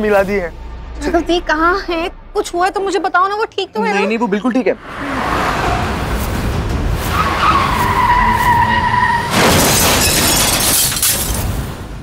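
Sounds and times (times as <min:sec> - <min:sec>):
car engine and tyres on road: 0:04.8 - 0:12.0
loud car crash: 0:09.0 - 0:11.8
glass shattering: 0:09.3 - 0:11.6.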